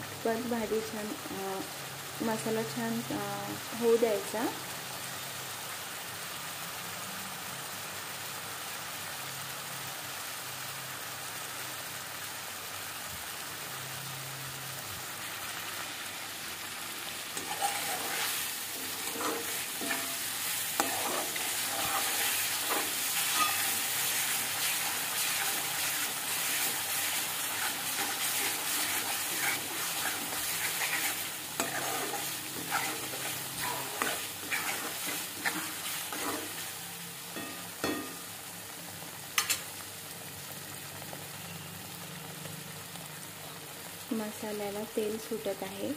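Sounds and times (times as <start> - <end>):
paste sizzling in oil: 0.0 - 45.9
metal spoon scraping a pan: 17.4 - 38.2.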